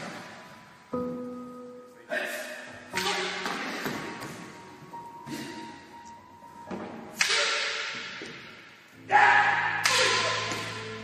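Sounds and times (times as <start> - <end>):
steady low musical tone: 0.0 - 11.0
wooden staff and sword clacking: 2.9 - 4.1, 6.7 - 8.6, 9.8 - 10.9.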